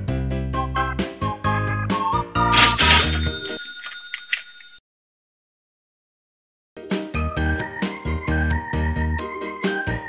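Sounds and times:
bell-like chime: 0:02.6 - 0:04.8
background music: 0:06.8 - 0:10.0.

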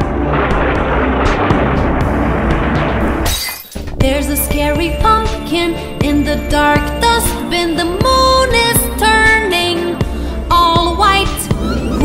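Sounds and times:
dense noisy sound effect: 0:00.0 - 0:03.3.

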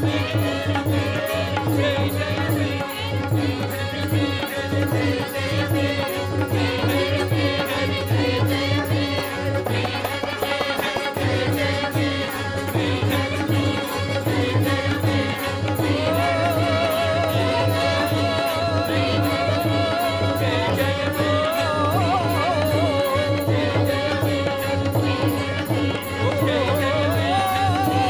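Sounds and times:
mantra chanted to music: 0:00.0 - 0:28.0.

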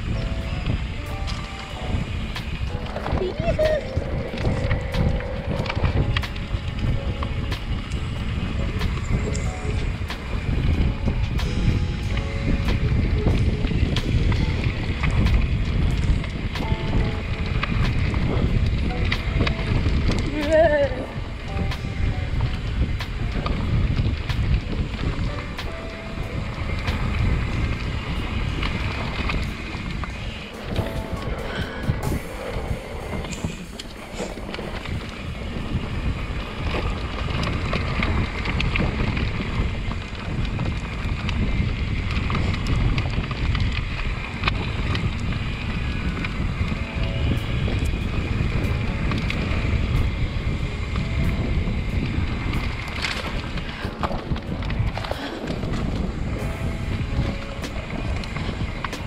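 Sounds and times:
mountain bike tyres on dirt trail: 0:00.0 - 0:59.0
wind rumbling on microphone: 0:00.0 - 0:59.0.

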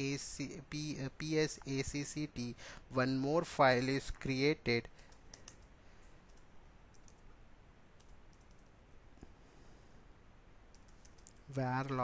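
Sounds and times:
low room hiss: 0:00.0 - 0:12.0
computer keyboard keystrokes: 0:05.1 - 0:05.7, 0:06.3 - 0:07.2, 0:08.0 - 0:08.7, 0:10.7 - 0:11.4.

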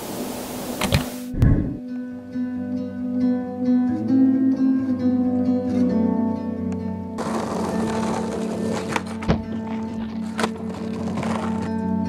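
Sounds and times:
television static hiss: 0:00.0 - 0:01.4
low hum: 0:01.3 - 0:02.0
soft plucked guitar music: 0:01.3 - 0:12.0
low thump: 0:01.4 - 0:01.8.

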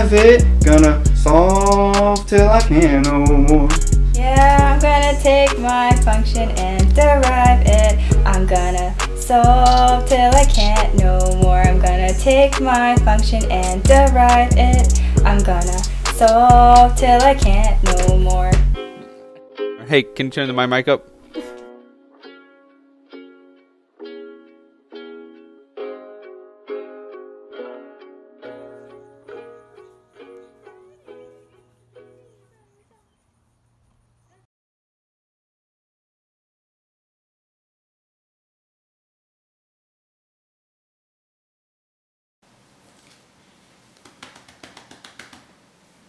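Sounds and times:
acoustic guitar chords: 0:00.0 - 0:32.2.

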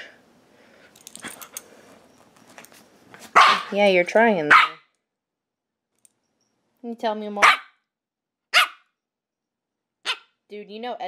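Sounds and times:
woman speaking: 0:03.4 - 0:04.6, 0:06.8 - 0:07.5, 0:10.5 - 0:11.0.

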